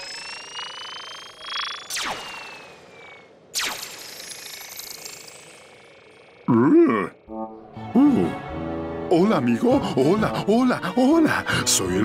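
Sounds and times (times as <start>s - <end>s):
swooping ray-gun zaps: 0.0s - 6.2s
rising electronic whine: 0.0s - 6.4s.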